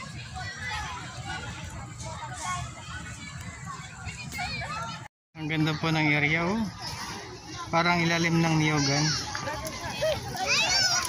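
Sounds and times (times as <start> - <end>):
children playing and calling out: 0.0 - 5.1, 5.8 - 11.0.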